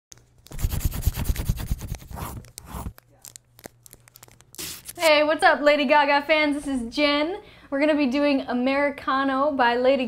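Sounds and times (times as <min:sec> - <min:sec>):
paper crinkling: 0:00.2 - 0:05.1.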